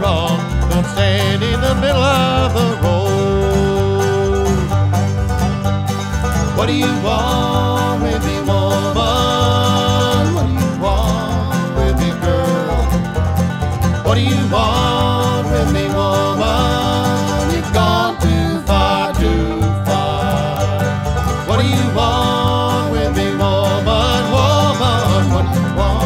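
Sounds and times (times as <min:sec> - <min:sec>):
bluegrass band playing: 0:00.0 - 0:26.0.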